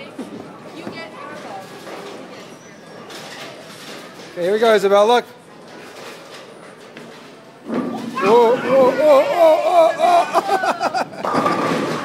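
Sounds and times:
bowling ball rolling on wood: 0:11.0 - 0:12.0.

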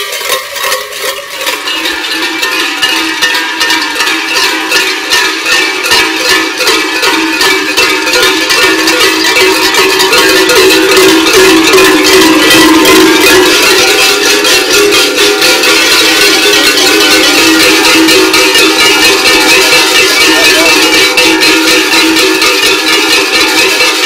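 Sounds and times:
large cowbells clanging: 0:00.0 - 0:24.0.

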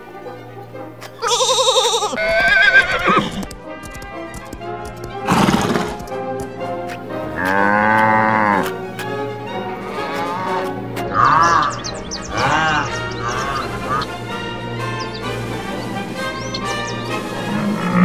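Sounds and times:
background music: 0:00.0 - 0:18.0
cattle calling: 0:01.2 - 0:03.5, 0:07.4 - 0:08.8, 0:09.7 - 0:18.0
horse neighing: 0:01.2 - 0:03.5, 0:09.9 - 0:14.2, 0:17.4 - 0:18.0.

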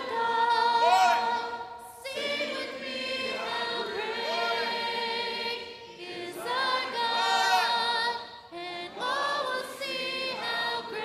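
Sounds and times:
choir singing in harmony: 0:00.0 - 0:11.0.

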